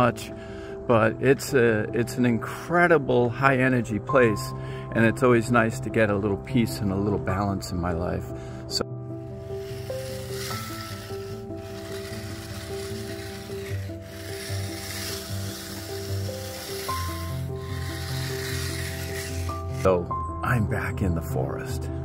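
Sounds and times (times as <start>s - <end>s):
slow held chords music: 8.9s - 20.4s
rake scraping through gravel: 9.3s - 19.9s.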